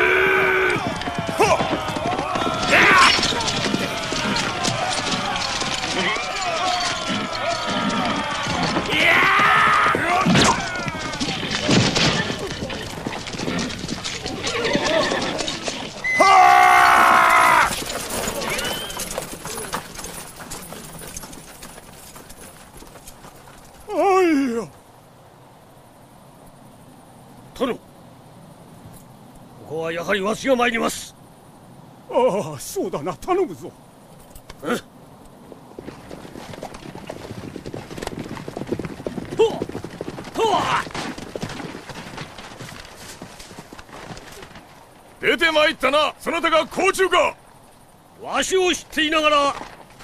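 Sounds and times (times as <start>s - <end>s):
horse loud held call: 0.0s - 12.5s
horse whinny: 0.0s - 19.8s
hooves clattering: 0.0s - 24.9s, 33.3s - 50.0s.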